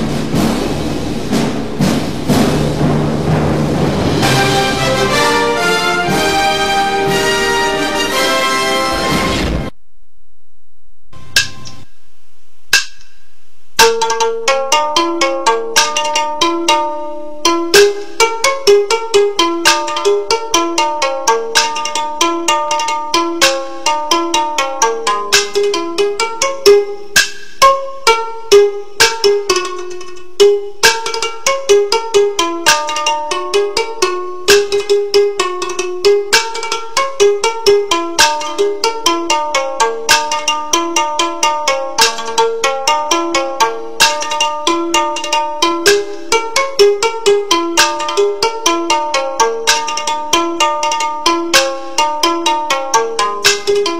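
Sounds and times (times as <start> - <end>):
ringing percussion strikes: 0.0 - 9.7
plucked string notes: 0.0 - 9.8, 13.8 - 53.9.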